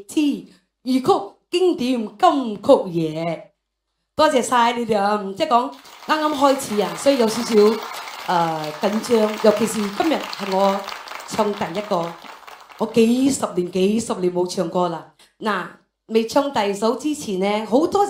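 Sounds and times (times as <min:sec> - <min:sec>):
woman talking into microphone: 0:04.2 - 0:12.2, 0:12.8 - 0:18.0.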